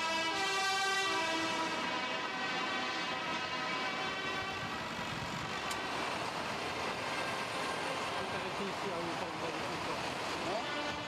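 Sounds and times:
street traffic: 0.0s - 11.0s
tractor engines running: 5.1s - 10.7s
tractor horn: 10.6s - 11.0s.

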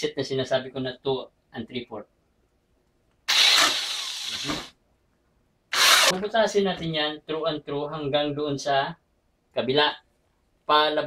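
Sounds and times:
electric drill with hole saw: 3.3s - 4.7s, 5.7s - 6.2s.

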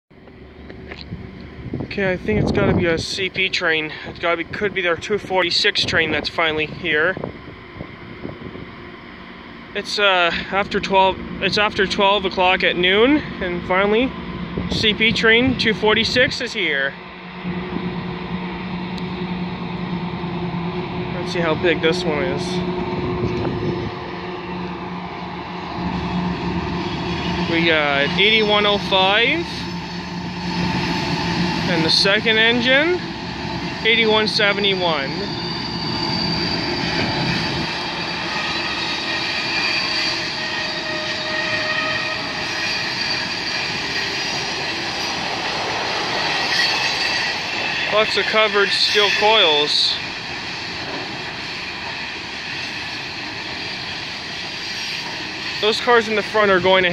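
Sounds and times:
diesel locomotive engine drone: 0.1s - 56.9s
train wheels rumbling on rails: 0.1s - 56.9s
high-pitched wheel squeal: 17.4s - 56.9s.

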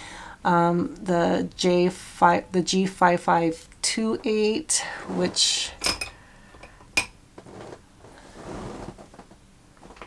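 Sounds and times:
soft rustling: 4.2s - 5.8s, 7.4s - 10.0s.

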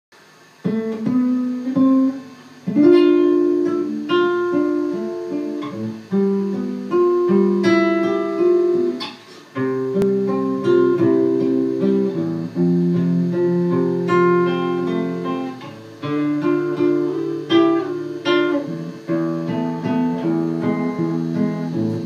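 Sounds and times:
nylon-string acoustic guitar playing: 0.6s - 22.0s.

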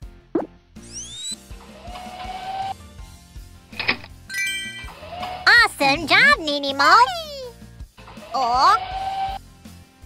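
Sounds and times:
light background music: 0.0s - 10.0s
rising held tone: 0.9s - 1.4s.

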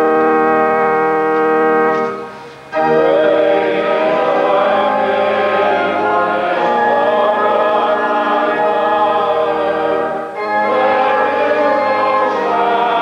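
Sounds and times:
choir singing held chords: 0.0s - 13.0s.

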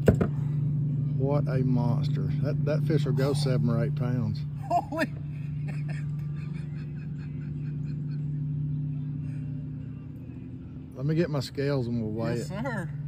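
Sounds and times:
boat motor humming: 0.0s - 13.0s.

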